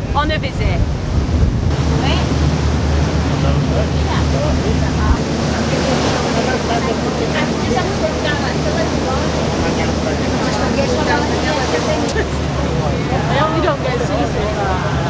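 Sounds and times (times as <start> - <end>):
boat engine droning: 0.0 - 15.0
rushing water and wind: 0.0 - 15.0
faint voices: 3.2 - 15.0.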